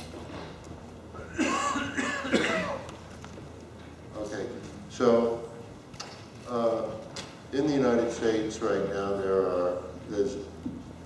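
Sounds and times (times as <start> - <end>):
person coughing: 1.2 - 2.9.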